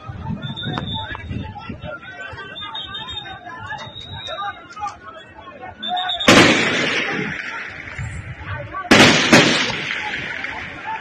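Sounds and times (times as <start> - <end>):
people's voices: 0.0 - 11.0
gunshot with echo: 6.3 - 7.5, 8.9 - 10.6.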